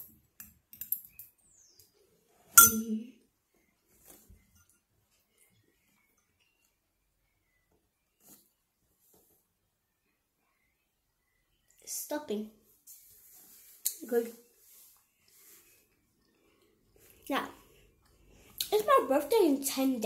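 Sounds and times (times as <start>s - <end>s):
metal spoon clinking on dish: 2.6s - 2.9s.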